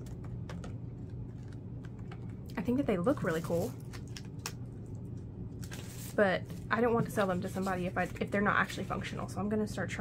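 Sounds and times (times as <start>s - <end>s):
paper crackling and clicking: 0.0s - 2.5s
low steady hum: 0.0s - 10.0s.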